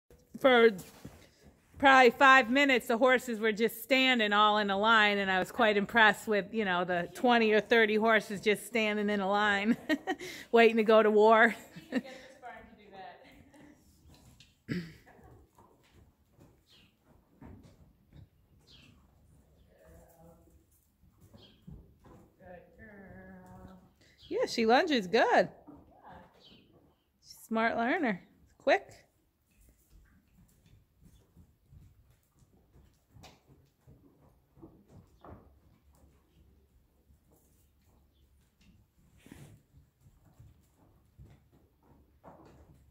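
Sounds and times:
horse hooves on dirt: 0.1s - 42.9s.

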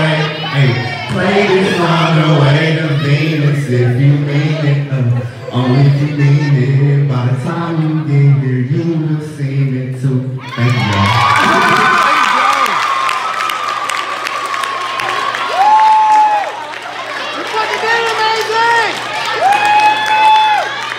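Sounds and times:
rap song: 0.0s - 11.3s
audience cheering and screaming: 10.4s - 20.9s.

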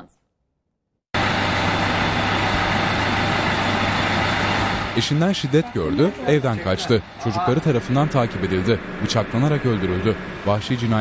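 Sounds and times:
engine idling: 1.2s - 11.0s.

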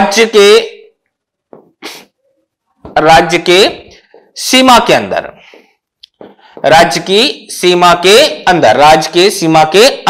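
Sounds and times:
man's sharp intake of breath: 1.8s - 2.1s.

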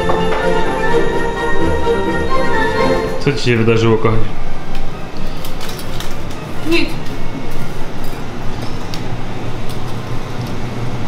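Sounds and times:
background music: 0.0s - 5.4s.

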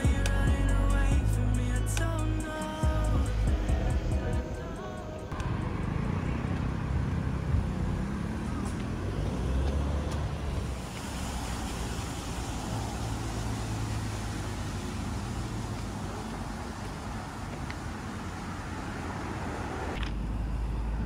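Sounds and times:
cars passing: 0.0s - 21.0s
distant traffic hum: 0.0s - 21.0s.

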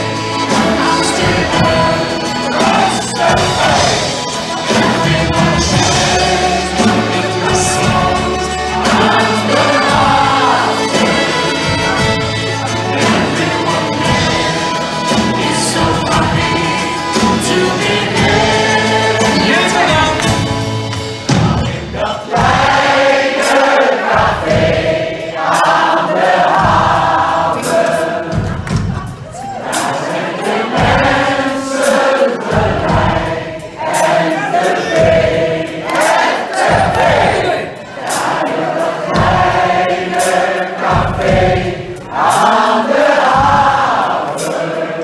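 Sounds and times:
crowd singing along: 0.0s - 45.0s
folk band playing: 0.0s - 45.0s.

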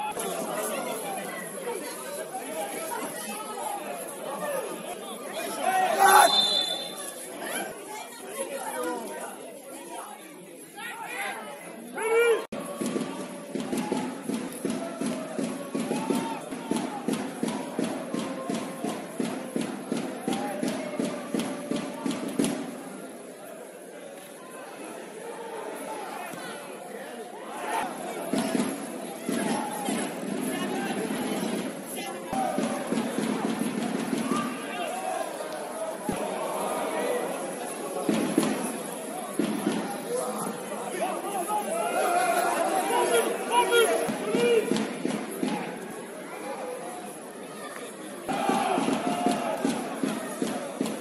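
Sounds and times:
voices calling and chattering: 0.0s - 51.0s
players shouting: 5.4s - 7.2s, 27.4s - 45.8s, 48.3s - 51.0s.

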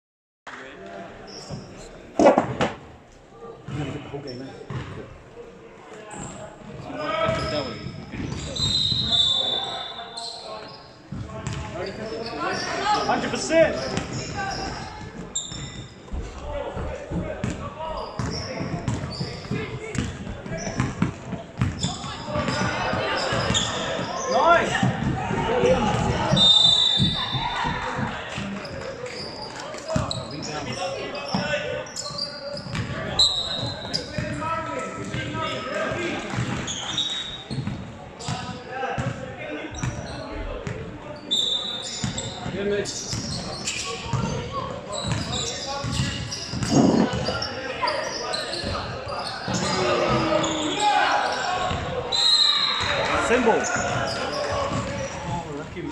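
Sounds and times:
sneakers squeaking: 1.2s - 2.7s, 3.7s - 5.0s, 6.1s - 28.0s, 28.6s - 55.4s.

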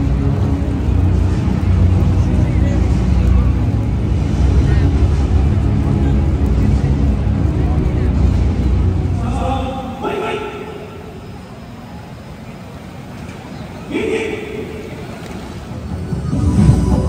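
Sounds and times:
music over public address: 0.0s - 17.0s
voice over public address: 9.1s - 11.4s, 13.8s - 15.2s.

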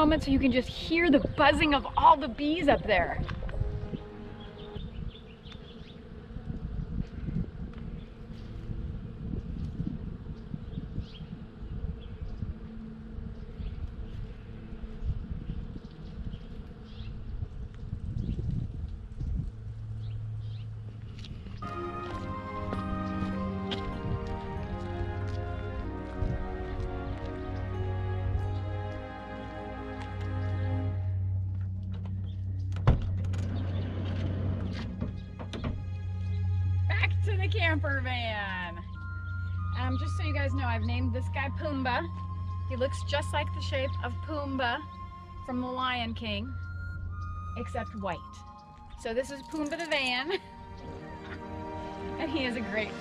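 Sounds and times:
music: 0.0s - 5.1s, 21.6s - 53.0s
wind rumble on microphone: 0.0s - 28.9s, 31.2s - 50.9s
bees buzzing: 0.0s - 53.0s.

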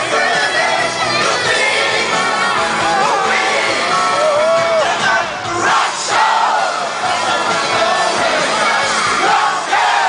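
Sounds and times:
crowd shouting and singing: 0.0s - 10.0s.

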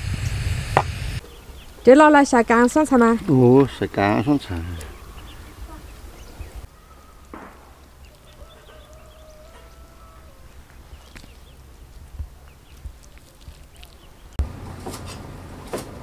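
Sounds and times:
wind rumble on microphone: 0.0s - 1.2s
faint distant animal call: 4.5s - 11.1s.

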